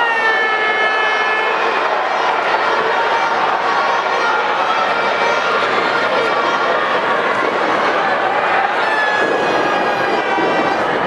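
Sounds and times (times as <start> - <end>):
high-pitched crowd tone: 0.0 - 11.0
loud arena crowd noise: 0.0 - 11.0.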